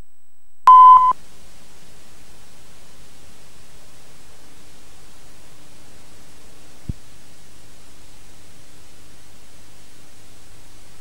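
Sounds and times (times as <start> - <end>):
test tone beep: 0.7 - 1.1.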